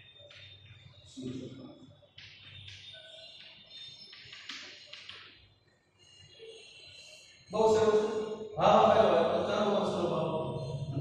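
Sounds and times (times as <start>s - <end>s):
man speaking with drawn-out vowels: 7.5s - 11.0s.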